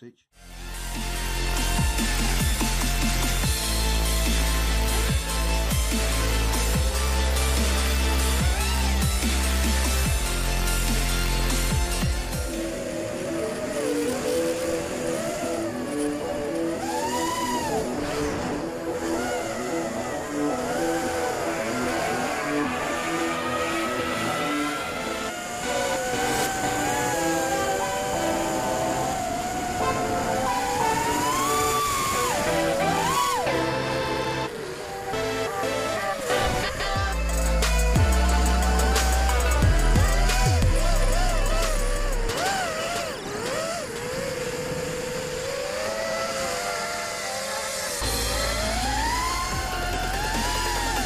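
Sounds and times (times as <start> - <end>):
rhythmic background music: 0.4 - 18.1, 18.7 - 43.6, 48.0 - 51.0
quadcopter propellers whining: 0.4 - 51.0.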